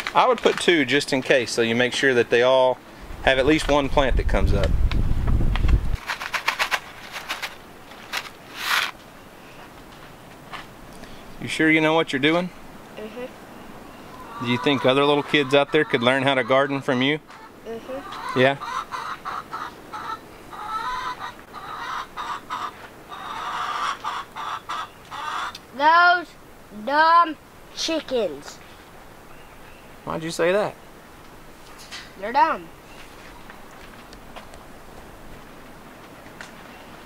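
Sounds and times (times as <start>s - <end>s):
short rustle: 5.2s - 10.7s
chickens clucking: 13.1s - 25.7s.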